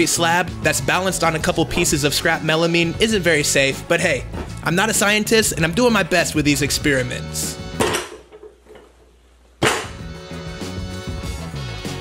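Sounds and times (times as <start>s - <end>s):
background music: 0.0s - 8.2s, 9.6s - 12.0s.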